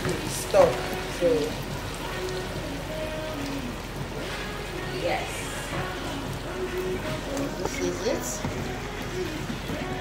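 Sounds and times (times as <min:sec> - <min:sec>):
oil and onions sizzling: 0:00.0 - 0:10.0.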